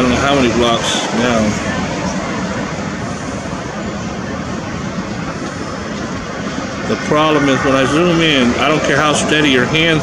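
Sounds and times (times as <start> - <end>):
rush of traffic: 0.0 - 10.0.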